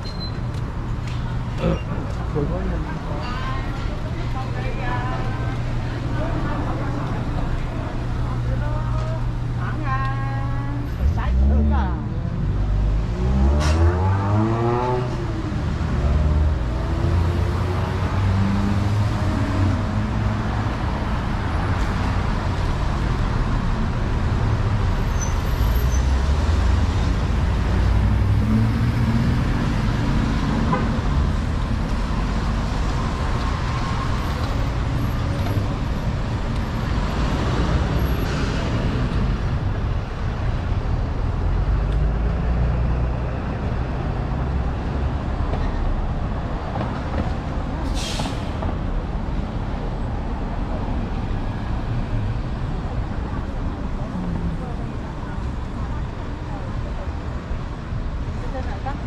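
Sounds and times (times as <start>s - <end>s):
car and truck engines passing: 0.0s - 59.0s.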